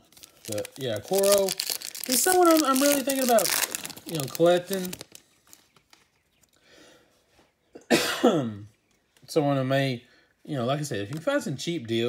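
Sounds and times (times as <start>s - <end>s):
man coughing: 7.8s - 8.6s.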